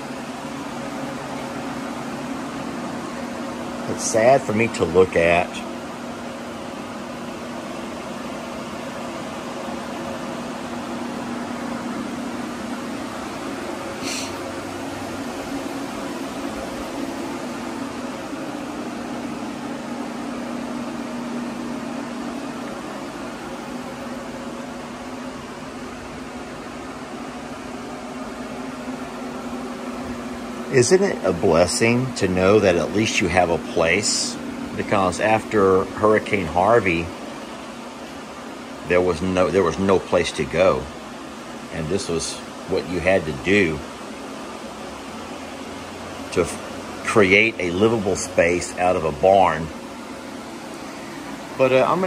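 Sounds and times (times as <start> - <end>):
blowers whirring: 0.0 - 52.0.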